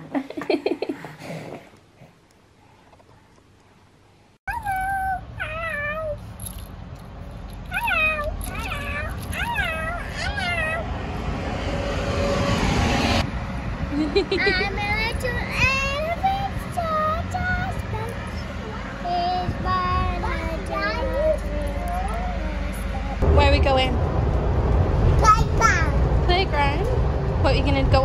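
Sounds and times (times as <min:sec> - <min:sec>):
child making vocal sounds: 0:04.5 - 0:06.2, 0:07.7 - 0:10.8
street traffic noise: 0:04.5 - 0:28.0.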